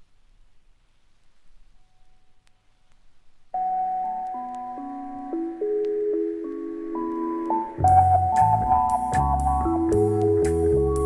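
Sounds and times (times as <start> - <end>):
faint clicks: 2.0 - 3.1
jazz-rock music with vibraphone: 7.0 - 11.0.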